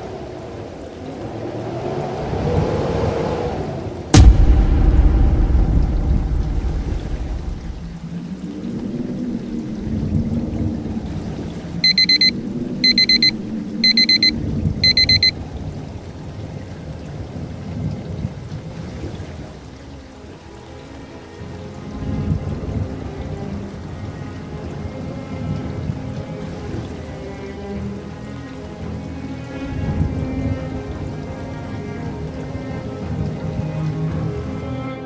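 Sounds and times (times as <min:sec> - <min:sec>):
rain-like hiss: 0:00.0 - 0:35.0
thunder rumbling: 0:02.3 - 0:11.5
low music drone: 0:04.1 - 0:16.4, 0:19.7 - 0:35.0
short electronic beeps: 0:11.8 - 0:15.4.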